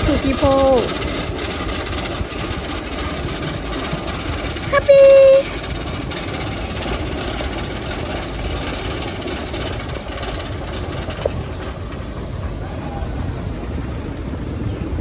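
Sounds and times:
roller coaster rumbling on wooden track: 0.0 - 15.0.

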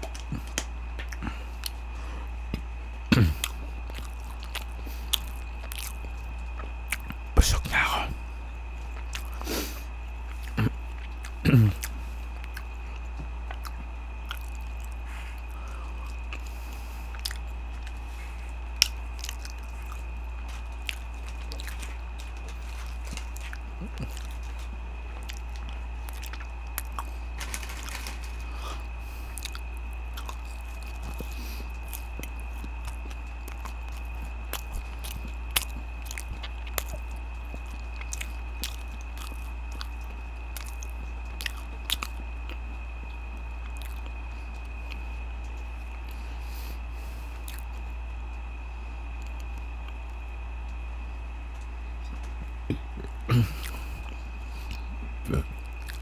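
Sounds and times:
biting and chewing crunchy food: 0.0 - 56.0
faint high whine: 0.0 - 56.0
low hum: 0.0 - 56.0.

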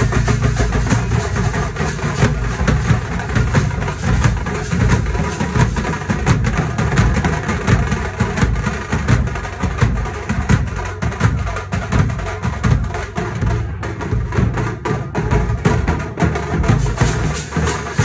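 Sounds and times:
bass drum beaten: 0.0 - 18.0
smaller drums in rapid strokes: 0.0 - 18.0.

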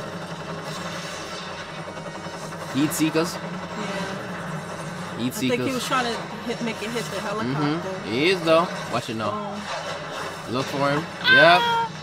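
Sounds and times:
helicopter running: 0.0 - 12.0.

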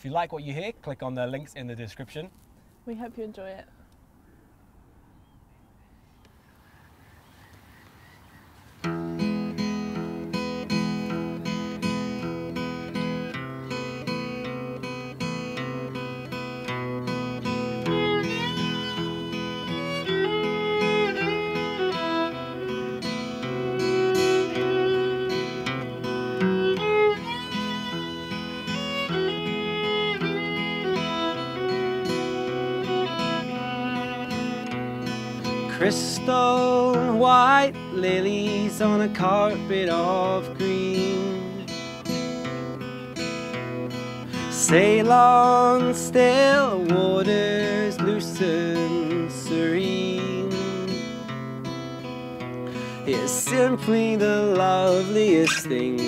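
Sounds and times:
strummed acoustic guitar: 8.8 - 56.0
bowed violin melody: 9.2 - 51.1.

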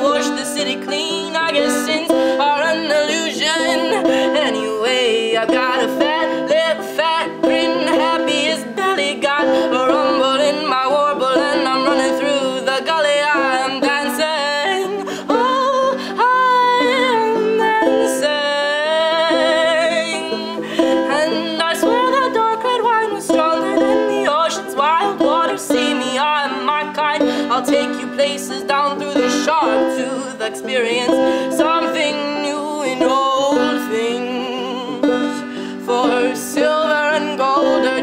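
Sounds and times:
banjo picking: 0.0 - 38.0
person singing wordlessly: 0.0 - 38.0.

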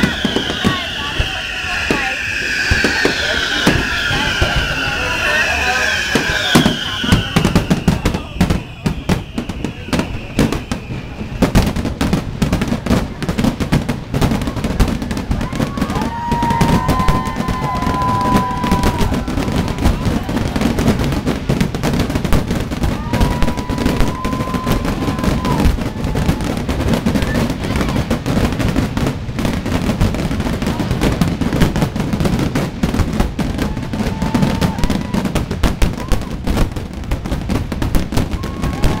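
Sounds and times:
fireworks bangs and crackles: 0.0 - 39.0
fireworks whistling: 0.0 - 39.0.

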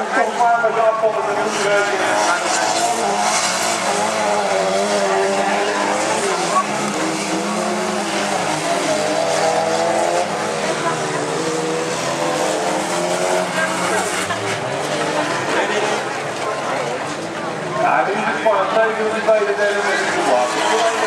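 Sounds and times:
race car engines revving: 0.0 - 21.0.

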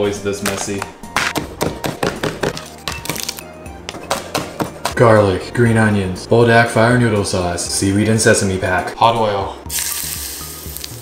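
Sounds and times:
background music: 0.0 - 11.0
cleaver chopping on plastic board: 1.2 - 3.3.

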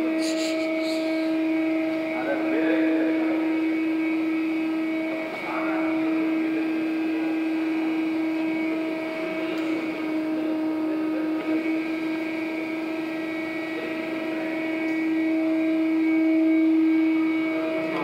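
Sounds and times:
steady machine hum: 0.0 - 18.0.

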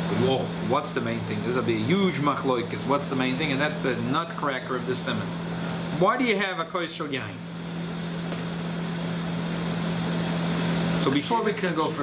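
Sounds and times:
machinery humming: 0.0 - 12.0.

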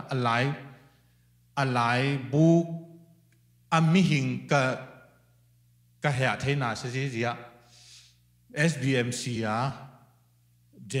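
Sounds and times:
man speaking into a microphone: 0.0 - 0.8, 1.6 - 2.8, 3.7 - 5.0, 6.0 - 7.5, 8.5 - 9.9, 10.8 - 11.0
faint steady hum: 0.0 - 11.0.

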